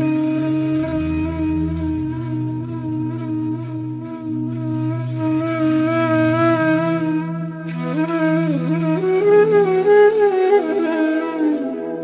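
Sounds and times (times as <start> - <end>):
low drone: 0.0 - 8.1
flute held note: 0.0 - 12.0.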